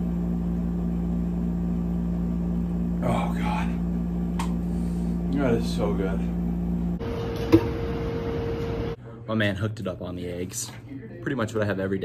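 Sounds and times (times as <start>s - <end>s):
steady kitchen hum: 0.0s - 12.0s.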